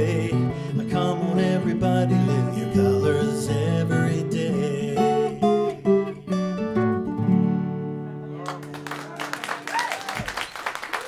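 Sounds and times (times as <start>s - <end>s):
acoustic guitars strumming: 0.0s - 9.0s.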